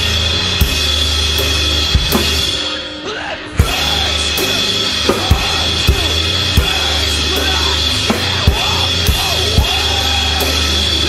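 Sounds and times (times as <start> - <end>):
acoustic drum kit: 0.0 - 3.0, 3.6 - 11.0
rock backing track bass and guitar: 0.0 - 11.0.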